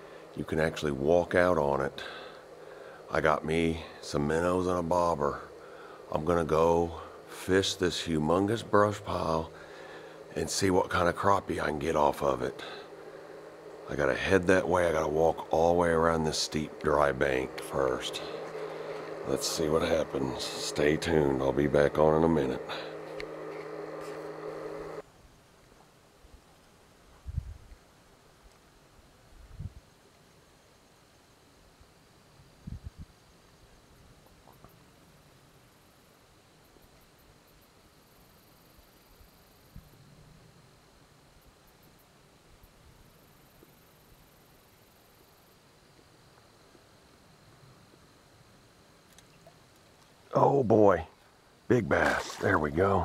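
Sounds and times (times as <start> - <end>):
steady low hum: 0.0 - 25.1, 31.3 - 53.0.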